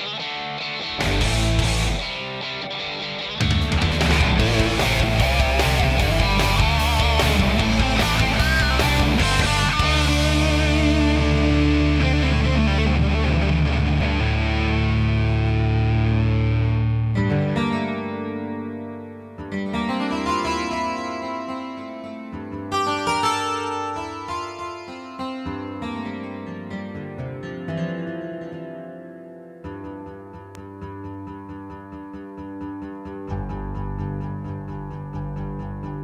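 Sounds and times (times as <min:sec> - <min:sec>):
distorted electric guitar chord: 0:00.0 - 0:26.7
keyboard notes and chords: 0:00.0 - 0:36.0.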